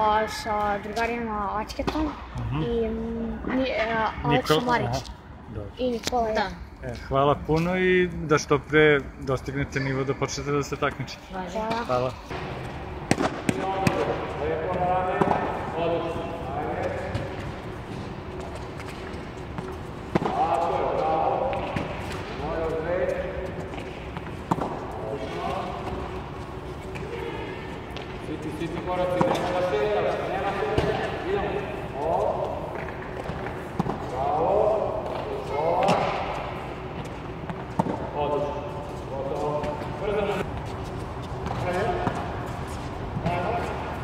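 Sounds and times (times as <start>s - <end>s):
tennis balls hit with rackets: 11.6s - 15.7s, 17.0s - 26.2s, 32.6s - 38.2s
balls bouncing on hard court: 11.6s - 15.8s, 16.7s - 38.4s, 39.3s - 44.0s.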